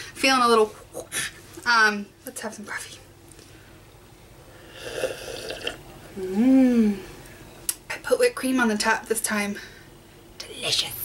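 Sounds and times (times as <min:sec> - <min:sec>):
person sipping coffee: 0:04.6 - 0:05.8.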